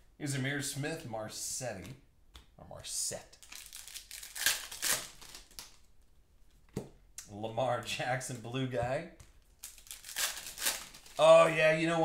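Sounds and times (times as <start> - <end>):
wrapper tearing and crinkling: 3.4 - 5.9, 9.6 - 11.2.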